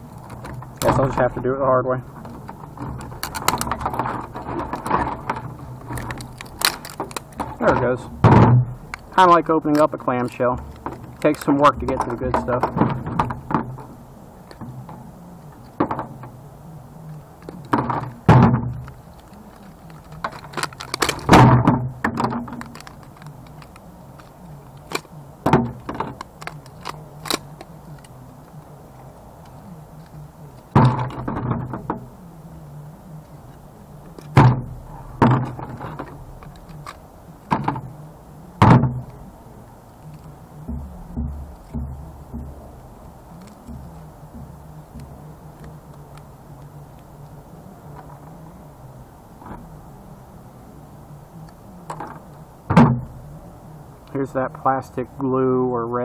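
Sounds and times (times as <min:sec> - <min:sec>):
plastic housing cracking and snapping: 0:02.2 - 0:09.1, 0:17.1 - 0:28.6, 0:33.5 - 0:38.0.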